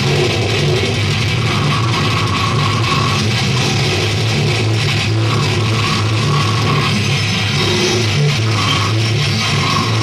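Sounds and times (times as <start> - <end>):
death metal band playing live: 0.0 - 10.0.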